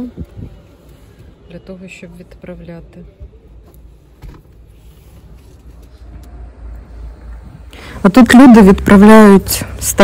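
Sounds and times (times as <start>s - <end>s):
faint clicks and rustles: 3.5s - 6.8s.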